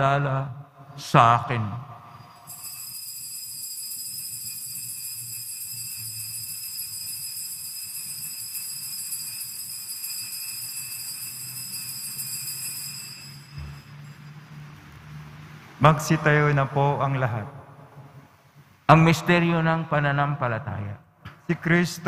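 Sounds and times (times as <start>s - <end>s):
altar bells jingling: 2.1s - 15.0s.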